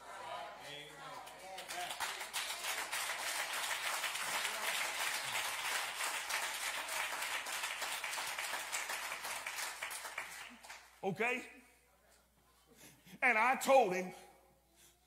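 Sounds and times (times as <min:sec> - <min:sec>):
congregation applauding: 0:01.2 - 0:11.0.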